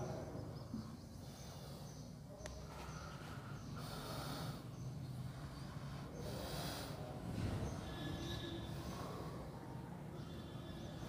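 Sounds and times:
close breathing: 0.8s - 11.0s.

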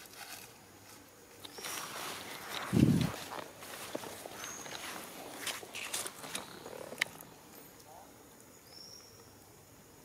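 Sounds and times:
footsteps through undergrowth: 0.0s - 7.2s
clicks of leaves and twigs: 0.0s - 7.3s.

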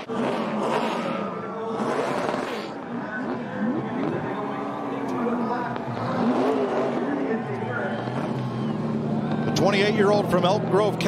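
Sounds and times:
car engine revving: 0.0s - 11.0s
tires spinning: 0.0s - 11.0s.

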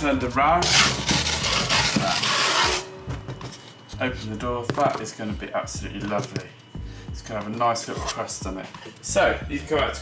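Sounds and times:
wooden peel scraping stone: 0.6s - 2.8s.

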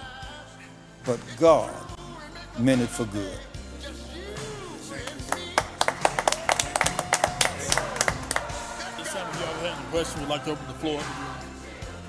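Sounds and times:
small group applauding: 5.0s - 8.6s.

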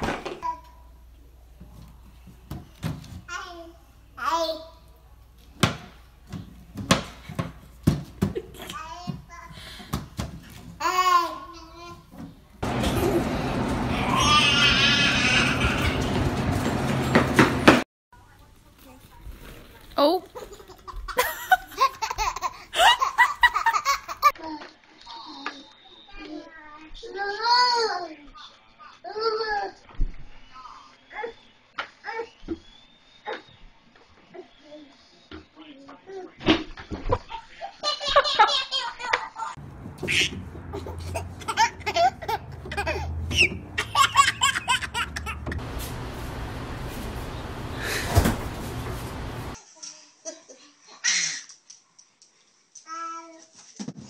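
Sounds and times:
toddlers laughing: 12.6s - 16.6s, 20.4s - 24.3s, 37.2s - 45.6s
child squealing: 13.9s - 16.0s.

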